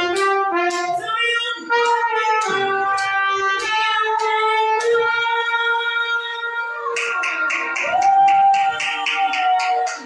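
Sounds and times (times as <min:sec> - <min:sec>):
steady beat: 0:00.0 - 0:05.6, 0:07.0 - 0:10.0
trumpet holding a long note: 0:00.0 - 0:07.0.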